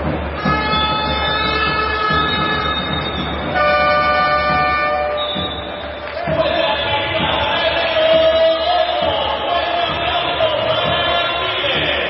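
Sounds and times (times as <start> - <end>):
crowd noise: 0.0 - 12.0
hand-held horn blasts: 0.4 - 5.8.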